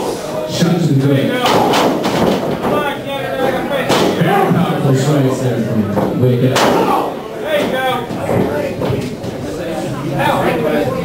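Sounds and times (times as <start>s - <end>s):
voices shouting and talking: 0.0s - 11.0s.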